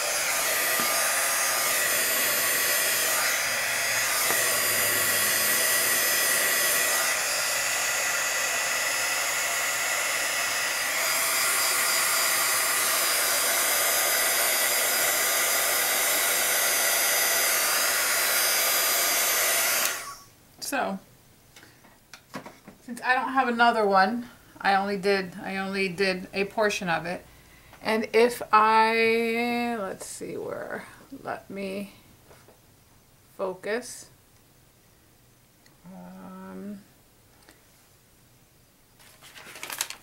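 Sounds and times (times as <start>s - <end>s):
heat tool blowing hot air: 0.0s - 20.3s.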